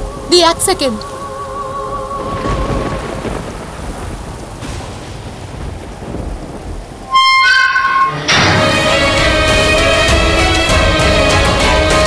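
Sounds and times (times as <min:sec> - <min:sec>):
steady rain: 0:00.0 - 0:12.0
thunder rumble: 0:00.0 - 0:12.0.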